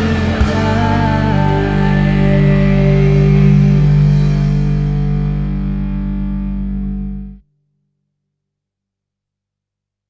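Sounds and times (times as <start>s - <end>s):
rock band music: 0.0s - 7.4s.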